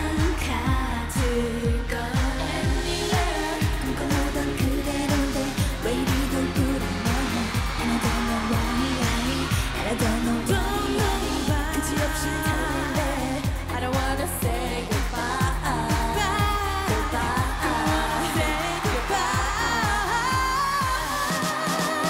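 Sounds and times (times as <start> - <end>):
dance-pop backing track: 0.0 - 22.0
women singing: 0.0 - 22.0.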